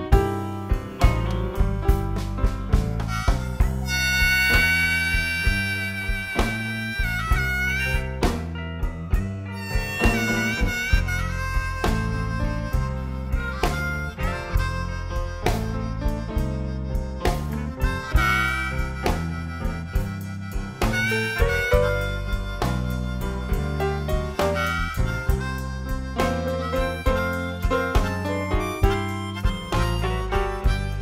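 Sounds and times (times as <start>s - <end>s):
band playing steady beat: 0.0s - 31.0s
blues harmonica solo: 0.0s - 31.0s.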